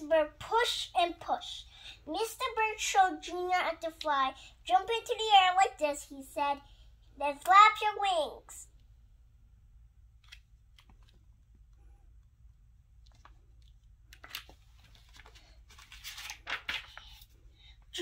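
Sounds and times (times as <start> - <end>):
book pages turning: 10.2 - 11.4, 13.0 - 17.4.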